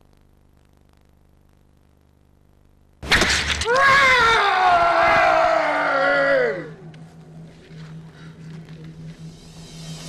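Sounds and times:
faint steady low hum: 0:00.0 - 0:10.0
group of people shouting: 0:03.7 - 0:06.8.

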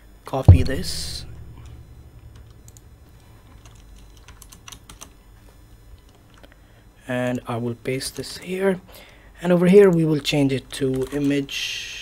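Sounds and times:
faint low hum: 0:00.5 - 0:08.0.

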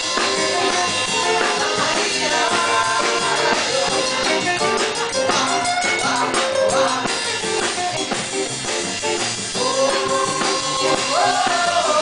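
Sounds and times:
drum kit groove: 0:00.0 - 0:12.0
electric bass: 0:00.0 - 0:12.0
jazz band jamming: 0:00.0 - 0:12.0.

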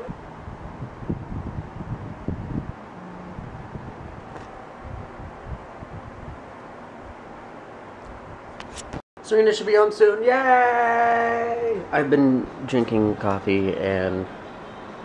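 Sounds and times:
electric fans hissing: 0:00.0 - 0:15.0.

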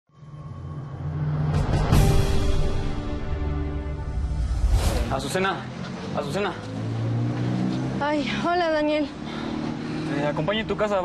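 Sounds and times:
low sustained drone: 0:00.1 - 0:05.1
rush of swishes: 0:04.2 - 0:05.3.

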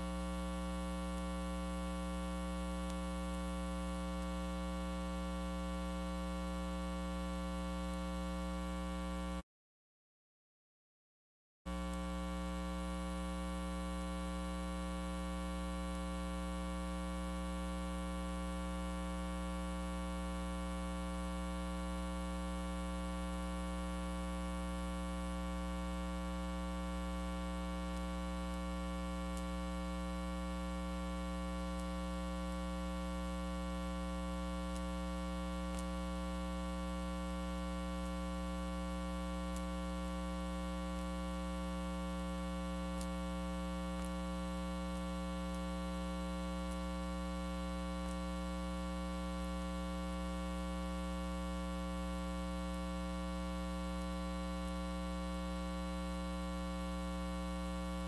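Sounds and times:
electrical mains hum: 0:00.0 - 0:09.4, 0:11.7 - 0:58.0.

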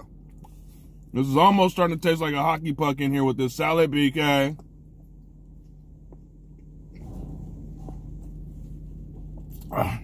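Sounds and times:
man chewing food: 0:00.0 - 0:01.1
low steady hum: 0:00.0 - 0:10.0.

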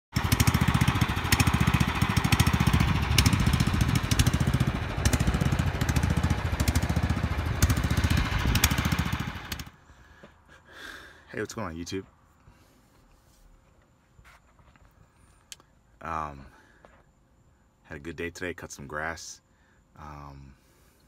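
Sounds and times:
lawn mower engine running: 0:00.1 - 0:09.8.

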